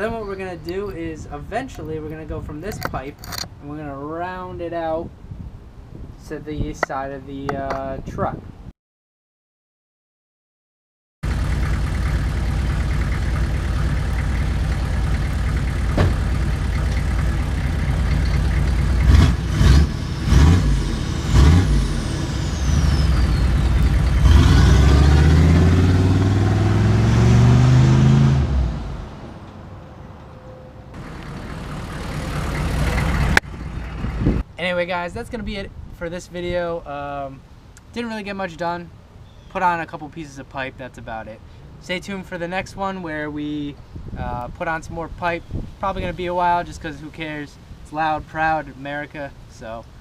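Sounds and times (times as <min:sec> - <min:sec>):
pickup engine idling and revving: 0:11.2 - 0:29.5, 0:31.0 - 0:34.4.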